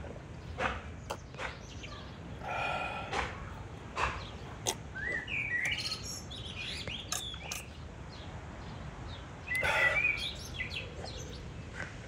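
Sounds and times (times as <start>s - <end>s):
faint birds chirping: 0.1s - 12.0s.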